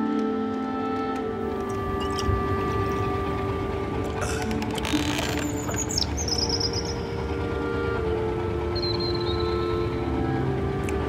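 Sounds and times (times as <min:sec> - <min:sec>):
soft sustained music: 0:00.0 - 0:11.0
seabird calling: 0:00.5 - 0:11.0.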